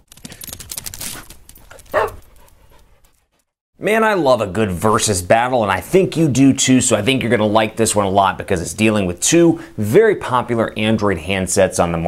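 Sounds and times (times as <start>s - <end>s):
dog barking: 1.9s - 2.2s.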